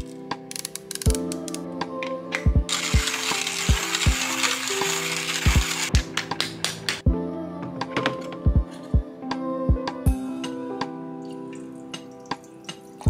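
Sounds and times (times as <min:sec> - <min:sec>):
lofi hip-hop music: 0:00.0 - 0:13.0
hand-cranked coffee grinder grinding: 0:02.7 - 0:06.0.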